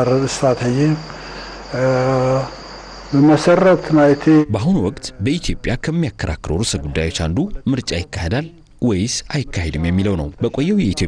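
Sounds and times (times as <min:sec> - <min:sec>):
man's drawn-out hesitation sound: 0:00.0 - 0:05.9
crickets trilling: 0:00.0 - 0:06.3.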